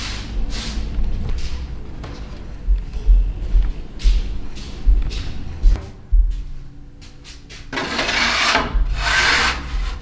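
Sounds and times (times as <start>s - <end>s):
rasping scraping strokes: 7.7s - 10.0s.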